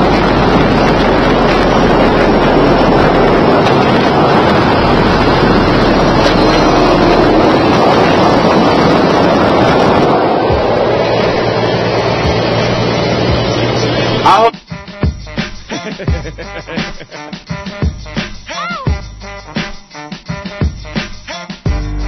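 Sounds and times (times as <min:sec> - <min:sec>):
truck low hum: 0:00.0 - 0:14.5
wind rush: 0:00.0 - 0:14.5
road noise: 0:00.0 - 0:14.6.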